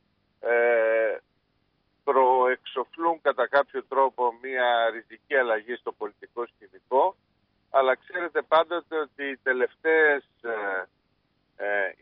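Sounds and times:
man saying eh: 0.4 - 1.2, 7.8 - 10.8, 11.6 - 12.0.

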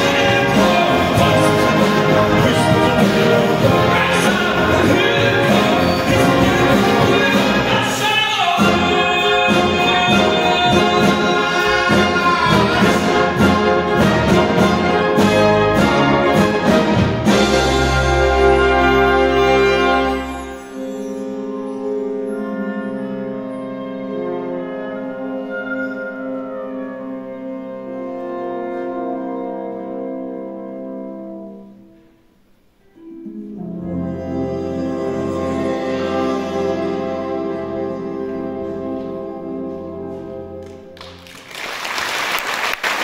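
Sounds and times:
military concert band playing: 0.0 - 32.2, 32.9 - 43.0.

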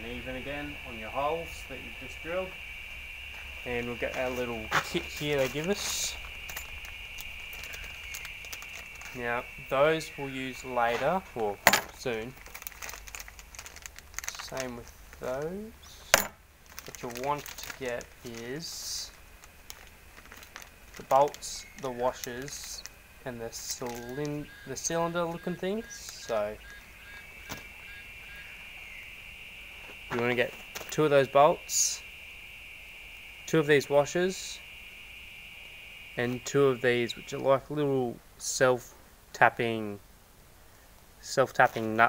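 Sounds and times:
high-pitched buzz: 0.0 - 12.4, 14.5 - 37.6
steady high hum: 0.0 - 38.4
plastic bag rustling with clicks: 5.1 - 9.2, 11.6 - 15.4, 16.0 - 24.8.

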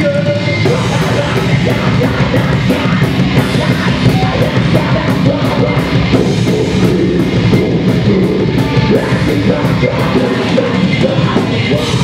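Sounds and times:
heavy rock band playing loud: 0.0 - 12.0.

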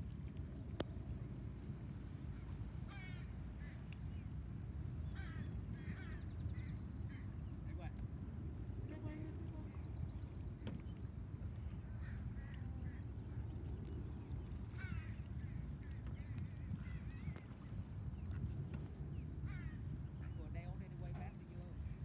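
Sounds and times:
low background rumble: 0.0 - 22.0.

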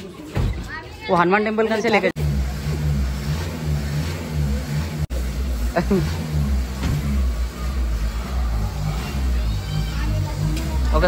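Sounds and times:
road rumble: 0.0 - 11.0
car engine running: 2.0 - 11.0.

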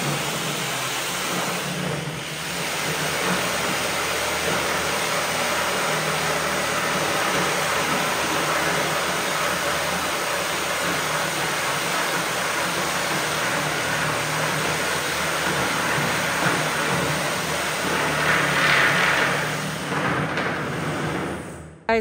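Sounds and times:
reciprocating saw cutting wood: 0.0 - 21.5.

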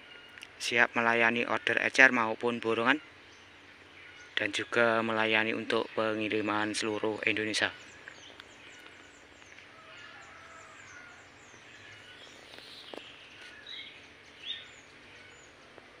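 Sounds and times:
small birds chirping: 0.0 - 16.0.

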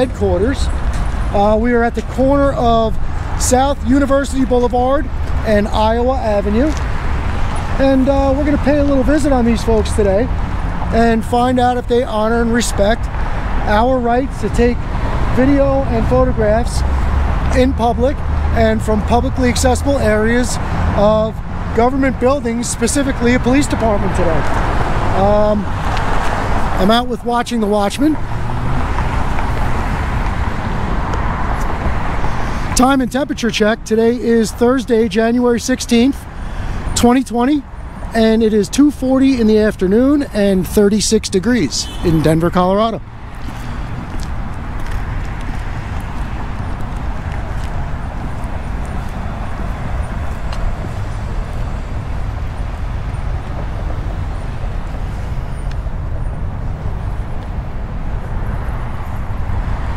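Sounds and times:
road traffic rumble: 0.0 - 59.9
steady outdoor roar: 0.0 - 59.9.

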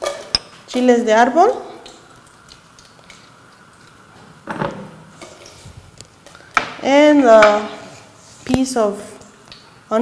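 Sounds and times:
chiles frying in hot lard: 0.0 - 10.0.

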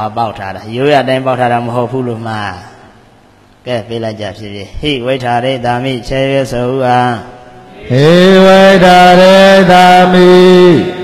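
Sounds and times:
man chanting in monotone: 3.6 - 11.0.

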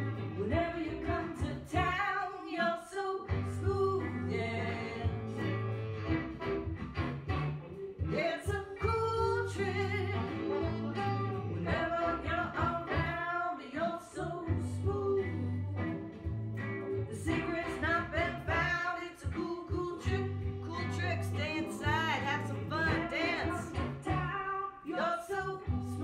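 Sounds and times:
bass line: 0.0 - 2.1, 3.3 - 13.3, 14.1 - 24.6, 25.3 - 26.0
woman singing: 0.0 - 5.8, 8.1 - 26.0
guitar: 0.0 - 26.0.

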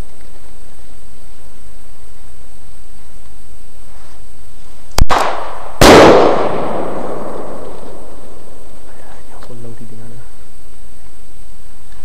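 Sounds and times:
loud bang in the air: 5.0 - 8.1
pistol shot: 5.0 - 8.4
echo rolling away: 5.0 - 8.9.

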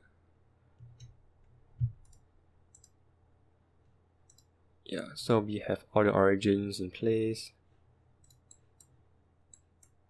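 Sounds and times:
faint computer mouse clicks: 1.9 - 3.0, 4.3 - 4.5.

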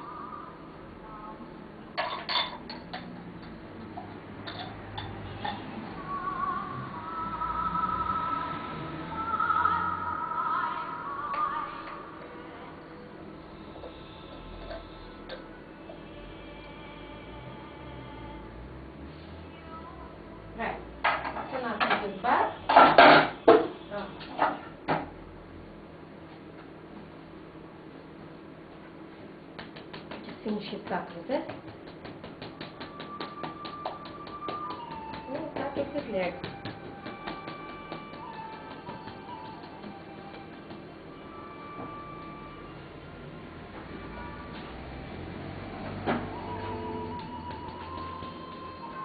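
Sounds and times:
music with high singing voice: 0.0 - 1.7, 4.9 - 21.1, 32.5 - 49.0
ceramic cups clinking: 2.0 - 3.2, 4.0 - 5.7.

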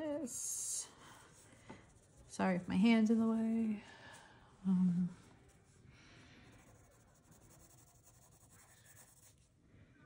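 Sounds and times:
pencil scratching on paper: 6.5 - 9.5.

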